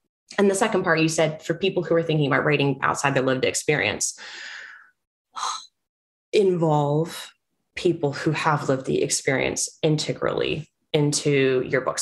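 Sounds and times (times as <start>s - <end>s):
short breath: 4.2s - 5.0s
woman's breathy exhale: 4.2s - 5.0s.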